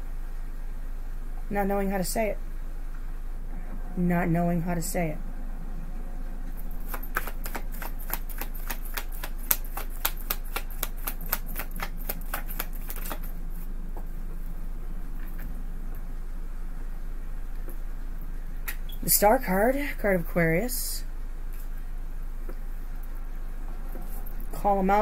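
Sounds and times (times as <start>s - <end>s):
cards being shuffled: 6.6s - 13.7s.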